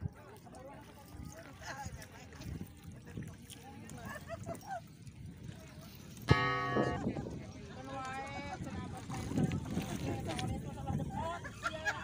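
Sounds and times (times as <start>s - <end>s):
water lapping: 0.0s - 12.0s
wind rumbling on microphone: 0.0s - 12.0s.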